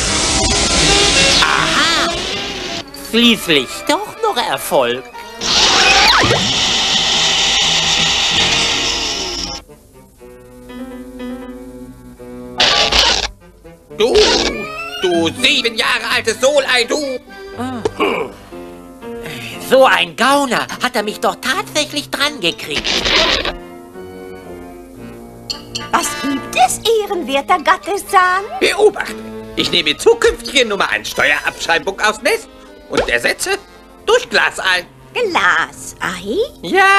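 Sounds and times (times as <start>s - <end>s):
background music with held notes: 0.0s - 5.5s, 7.0s - 36.9s
cartoon rushing sound effect: 5.4s - 6.5s, 14.1s - 15.3s
cartoon vacuum cleaner whir: 5.4s - 9.6s, 22.8s - 23.6s
cartoon music: 14.0s - 16.0s.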